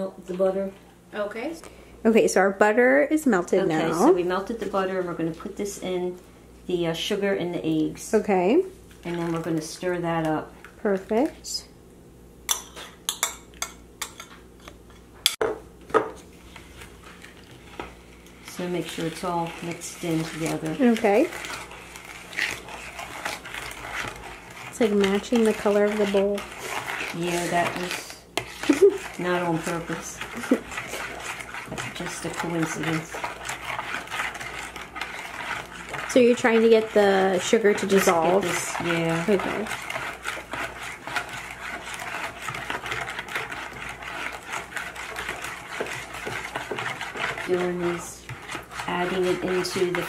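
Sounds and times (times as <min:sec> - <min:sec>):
fork stirring batter in plastic bowl: 0:03.7 - 0:06.2, 0:06.9 - 0:11.4, 0:12.5 - 0:15.0, 0:16.1 - 0:50.0.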